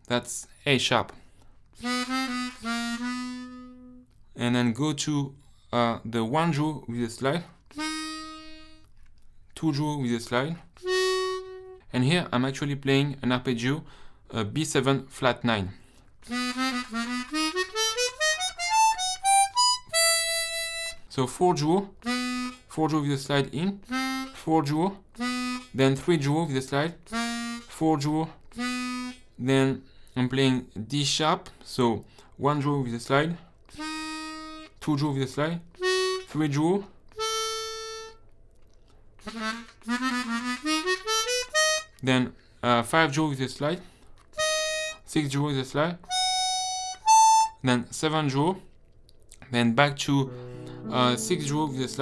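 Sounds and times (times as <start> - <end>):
harmonica arpeggio: 1.8 - 4.0, 7.7 - 8.9, 10.8 - 11.9, 16.2 - 21.1, 22.0 - 22.8, 23.8 - 25.8, 27.0 - 27.8, 28.5 - 29.2, 33.7 - 34.8, 35.8 - 36.4, 37.2 - 38.2, 39.2 - 42.0, 44.4 - 45.1, 46.1 - 47.6, 50.2 - 52.0.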